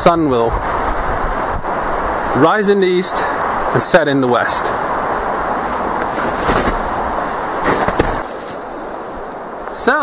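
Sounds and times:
rustling and knocking at microphone: 5.7s - 6.9s, 7.6s - 8.6s.

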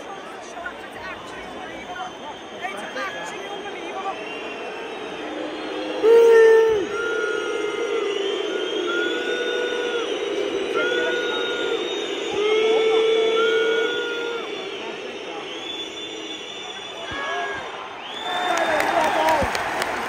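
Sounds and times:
stadium noise: 0.0s - 20.0s.

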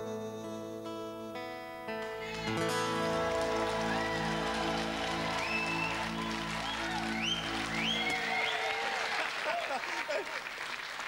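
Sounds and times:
guitar chord ringing: 0.1s - 8.2s
high rising whoops: 2.3s - 9.8s
audience applause and cheering: 2.3s - 11.0s.

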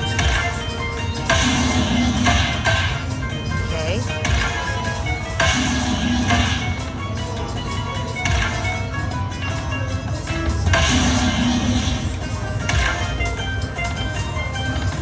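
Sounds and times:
electronic slot machine music: 0.0s - 15.0s.

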